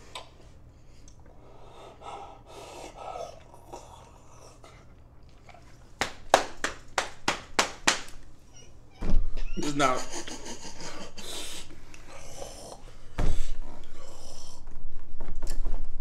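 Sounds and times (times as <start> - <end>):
sharp hand claps: 6.0 - 8.2
muffled breathing through hands: 10.4 - 14.8.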